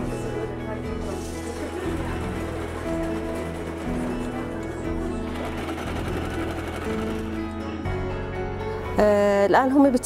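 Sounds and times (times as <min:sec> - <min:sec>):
background music of held notes: 0:00.0 - 0:10.0
electric sewing machine stitching: 0:01.2 - 0:07.6.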